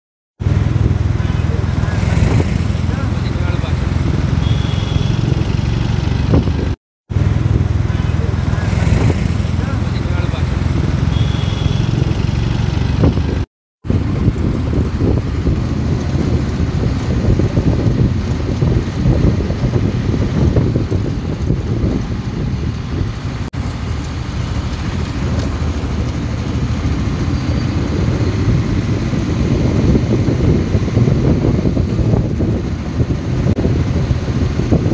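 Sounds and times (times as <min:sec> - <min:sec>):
wind buffeting microphone: 0:00.4 - 0:11.2, 0:11.8 - 0:34.9
vehicle road and engine noise: 0:00.4 - 0:34.9.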